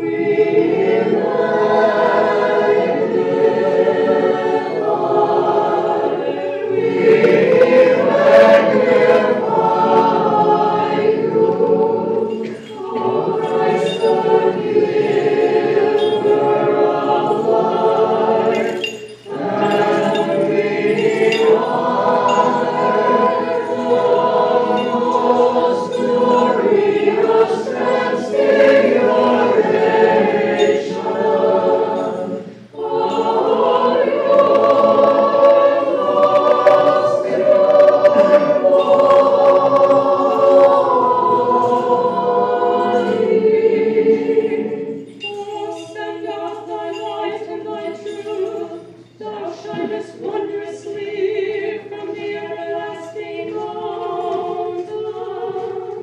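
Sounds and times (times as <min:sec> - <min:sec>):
choir singing unaccompanied chant: 0:00.0 - 0:56.0.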